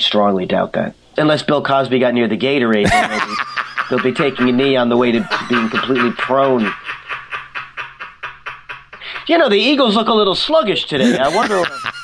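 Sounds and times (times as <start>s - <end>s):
people talking: 0.0s - 7.0s, 9.0s - 12.0s
breathy laughter: 2.8s - 4.2s, 5.0s - 9.2s, 11.0s - 12.0s.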